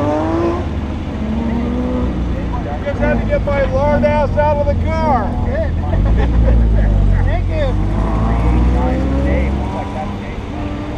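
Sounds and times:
car engine running at low revs: 0.0s - 10.9s.

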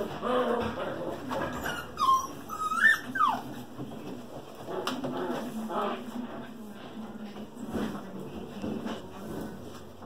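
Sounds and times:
puppy whining: 0.1s - 3.8s.

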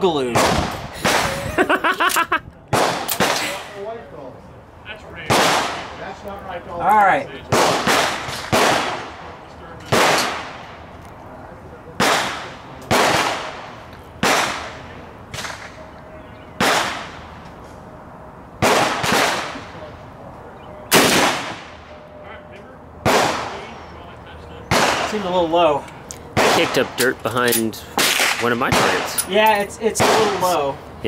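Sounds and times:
rifle shots with echo: 7.5s - 9.2s, 9.9s - 10.6s, 12.0s - 14.8s, 16.6s - 17.2s, 18.6s - 19.7s, 20.9s - 21.8s, 23.0s - 23.6s.

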